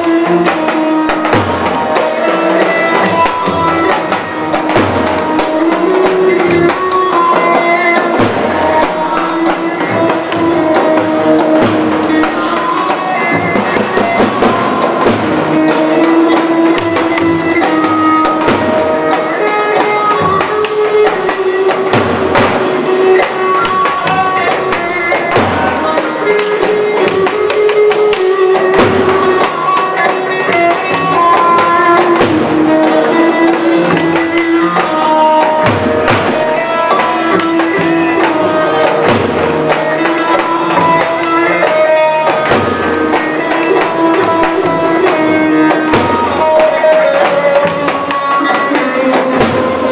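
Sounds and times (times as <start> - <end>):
bass drum beating steady rhythm: 0.0 - 49.9
ornamented melody line: 0.0 - 49.9.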